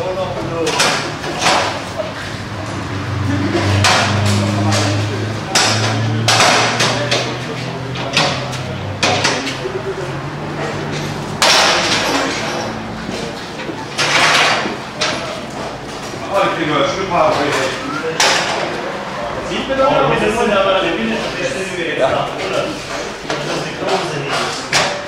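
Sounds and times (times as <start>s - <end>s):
people talking: 0.0s - 25.0s.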